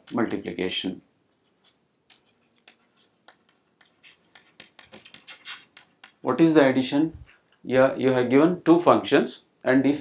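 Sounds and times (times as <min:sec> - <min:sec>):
chalk scratching on chalkboard: 0:00.0 - 0:06.5.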